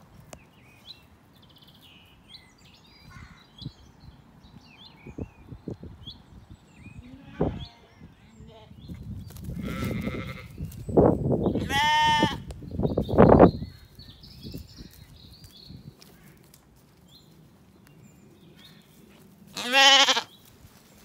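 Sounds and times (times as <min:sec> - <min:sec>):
rustling near microphone: 0:08.8 - 0:21.0
sheep bleating: 0:09.6 - 0:10.5, 0:11.6 - 0:12.4, 0:19.6 - 0:20.3.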